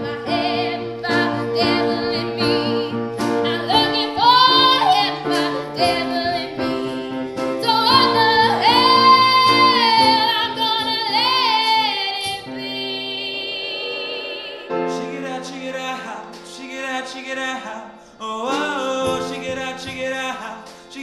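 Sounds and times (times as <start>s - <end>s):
woman singing pop ballad: 0.0s - 15.9s
accompaniment chords: 0.0s - 16.6s.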